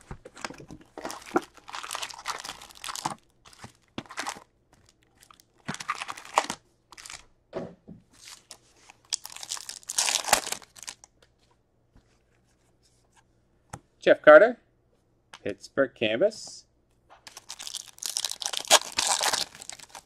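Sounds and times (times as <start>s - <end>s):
plastic wrappers crinkling: 0.0s - 7.2s, 8.2s - 11.1s, 17.3s - 20.0s
wrapper being torn open: 0.5s - 4.4s, 5.2s - 7.2s, 8.2s - 11.1s, 17.3s - 20.0s.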